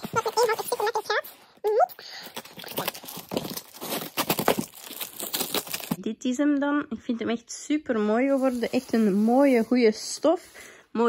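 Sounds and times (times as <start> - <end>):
paper wrapping crinkling: 2.0 - 6.0
packing tape ripping off box: 2.4 - 6.0.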